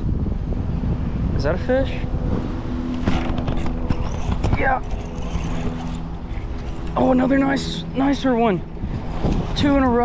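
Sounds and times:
low rumble: 0.0s - 10.0s
steady low hum: 0.0s - 10.0s.

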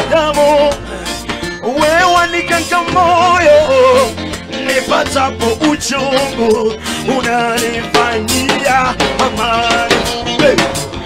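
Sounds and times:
band playing gospel music: 0.0s - 11.0s
man singing with vibrato: 0.0s - 11.0s.

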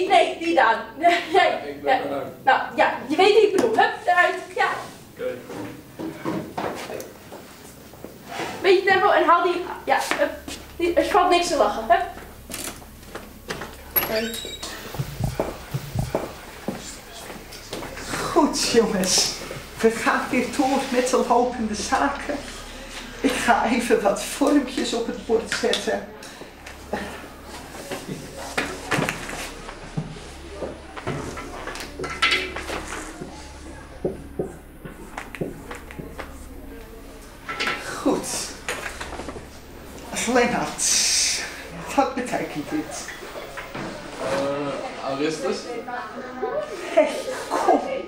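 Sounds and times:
low steady hum: 0.0s - 48.0s
footsteps on floor: 5.5s - 8.6s, 10.0s - 10.8s, 12.1s - 18.2s, 26.4s - 32.0s, 32.6s - 37.3s
marker writing on whiteboard: 14.4s - 16.8s.

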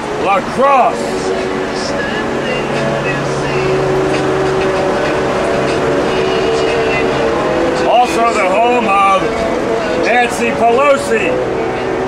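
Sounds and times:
bus engine and road drone: 0.0s - 12.0s
man speaking: 0.2s - 1.2s, 7.9s - 9.4s, 10.0s - 11.4s.

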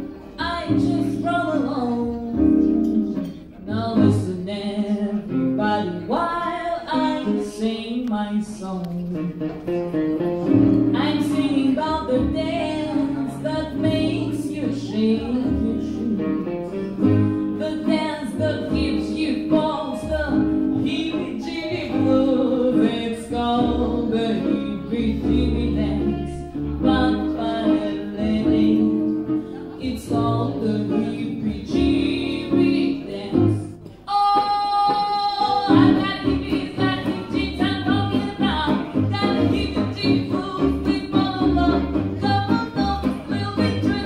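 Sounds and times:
woman singing: 0.0s - 9.5s, 10.8s - 44.0s
double bass plucking: 0.0s - 33.9s, 35.2s - 44.0s
acoustic guitars strumming: 8.8s - 34.0s, 35.5s - 44.0s.

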